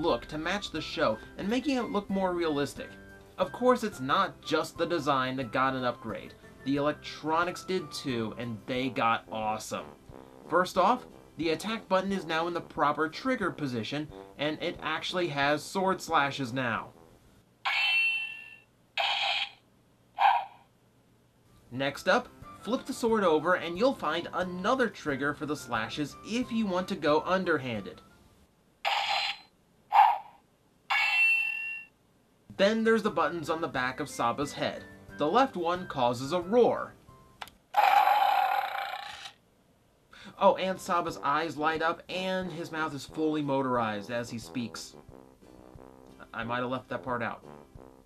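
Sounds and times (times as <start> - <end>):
toy roar sound effect: 17.6 - 19.6, 20.2 - 20.7, 28.9 - 31.8, 37.7 - 39.4
toy sword slash sound effects: 19.0 - 19.6
ringing tone: 30.9 - 31.9.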